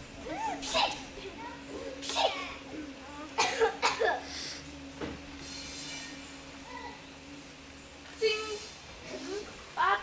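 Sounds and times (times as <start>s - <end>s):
person coughing: 3.4s - 4.3s.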